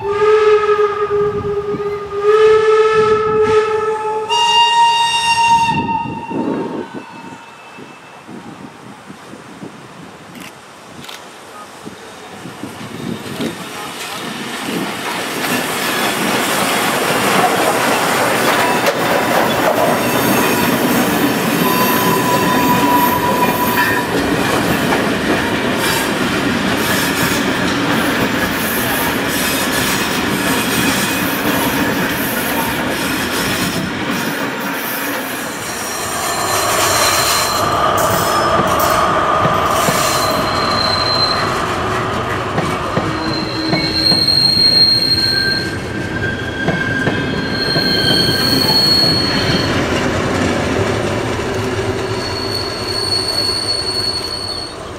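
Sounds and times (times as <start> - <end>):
train wheels rolling on rail: 6.4 - 54.9
wheels squealing: 34.8 - 49.9, 52.0 - 54.8.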